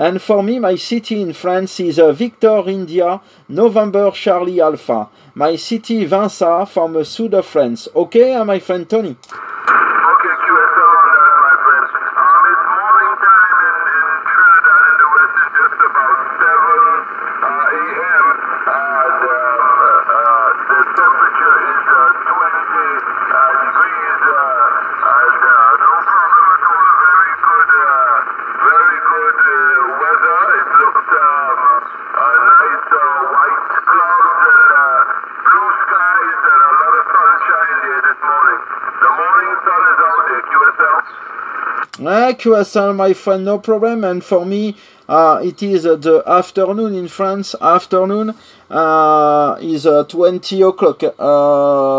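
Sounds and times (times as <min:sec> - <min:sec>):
man talking over shortwave radio: 0:00.0 - 0:51.9.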